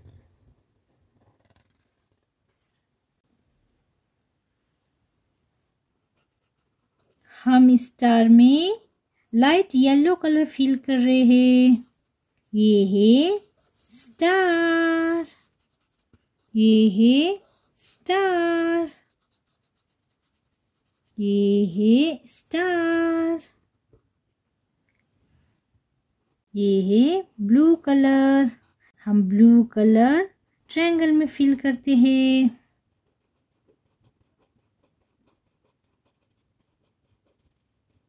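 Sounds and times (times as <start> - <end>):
marker scratching on paper: 1.2 - 2.8, 6.2 - 7.3, 10.6 - 22.7, 33.0 - 38.0.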